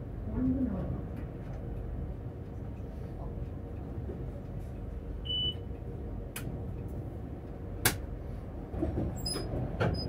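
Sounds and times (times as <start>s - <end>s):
low hum of tram: 0.0s - 10.0s.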